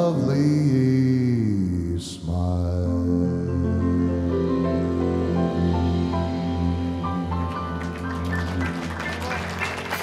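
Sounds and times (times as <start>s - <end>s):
soft band accompaniment: 0.0s - 10.0s.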